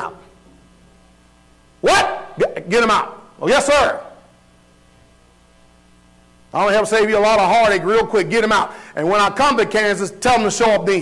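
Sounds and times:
audio system hiss: 0:00.0 - 0:11.0
electrical mains hum: 0:00.0 - 0:11.0.

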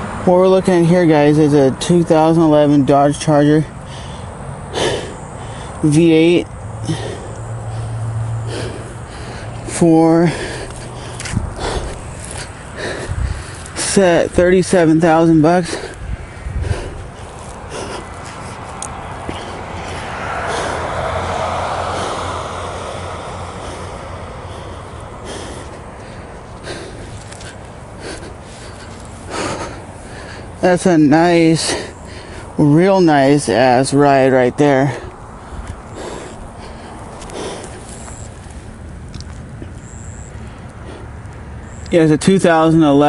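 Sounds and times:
distant road traffic rumble: 0:00.0 - 0:43.0
vehicle driving past: 0:02.8 - 0:30.8.

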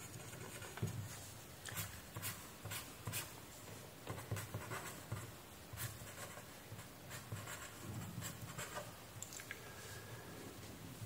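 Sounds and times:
ballpoint pen scratching on paper: 0:00.0 - 0:01.2, 0:04.1 - 0:08.9.

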